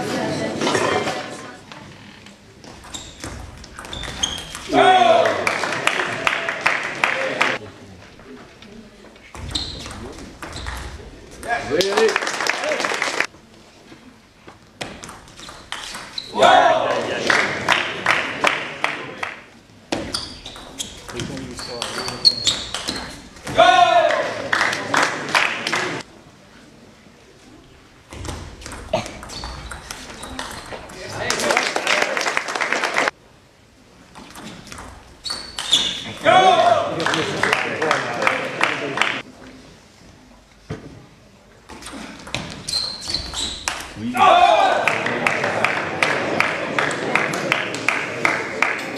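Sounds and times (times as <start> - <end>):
person shouting: 4.7 - 5.3, 23.6 - 24.2, 44.1 - 44.8.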